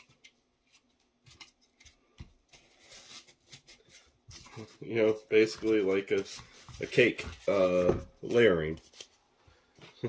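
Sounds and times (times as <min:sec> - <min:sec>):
man speaking: 0:04.6 - 0:08.8.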